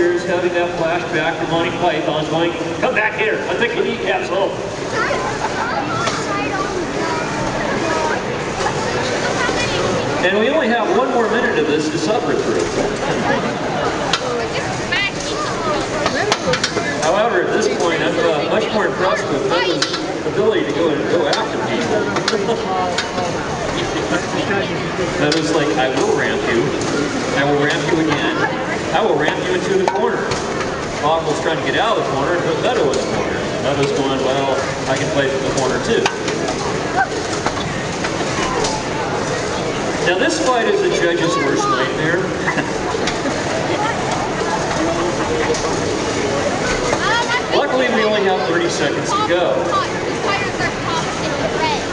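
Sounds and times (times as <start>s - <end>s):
overlapping voices chattering: 0.0s - 51.9s.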